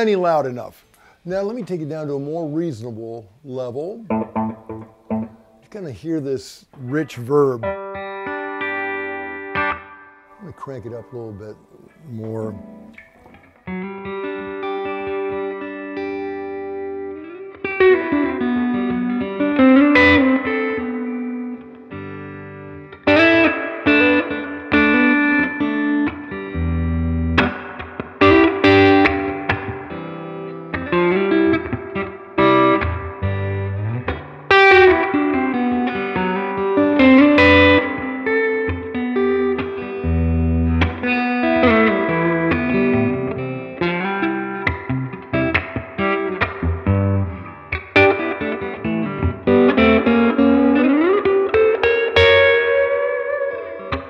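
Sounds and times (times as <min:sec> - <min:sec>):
electric guitar with light overdrive: 0:04.0 - 0:05.7, 0:06.7 - 0:54.0.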